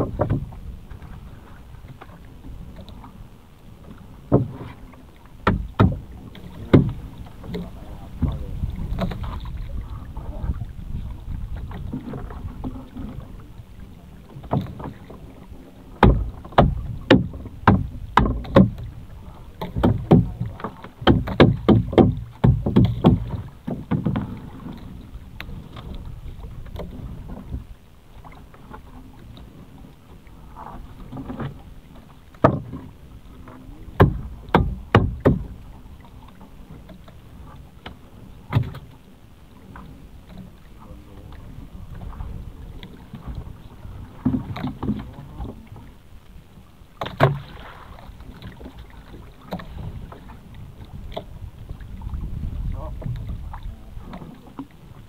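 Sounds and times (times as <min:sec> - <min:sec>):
irregular knocks and clatter: 0:00.0 - 0:00.6, 0:04.3 - 0:04.8, 0:05.4 - 0:09.5, 0:16.0 - 0:18.9, 0:19.6 - 0:24.9, 0:32.4 - 0:32.9, 0:34.0 - 0:35.5.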